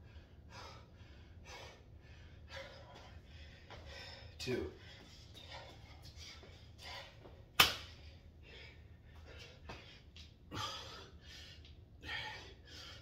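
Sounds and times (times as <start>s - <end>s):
man breathing hard: 0.0s - 13.0s
body slapping the floor: 7.6s - 7.9s.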